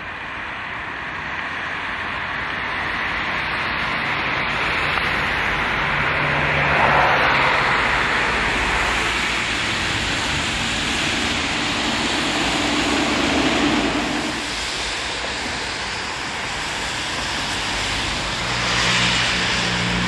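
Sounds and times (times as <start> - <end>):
cars passing on a wet road: 0.0 - 20.0.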